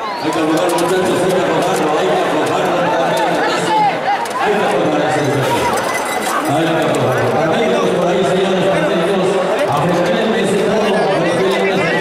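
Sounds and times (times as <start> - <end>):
crowd talking: 0.0 - 12.0.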